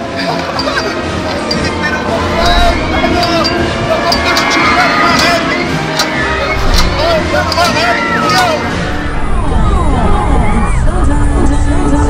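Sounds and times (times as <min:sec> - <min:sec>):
people crying out and shouting: 0:00.0 - 0:11.5
crowd of voices: 0:00.0 - 0:12.0
music playing: 0:00.0 - 0:12.0.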